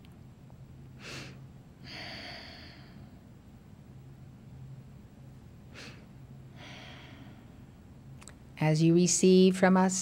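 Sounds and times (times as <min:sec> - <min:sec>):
low steady hum: 0:00.0 - 0:10.0
woman breathing: 0:01.0 - 0:03.3, 0:05.7 - 0:07.9.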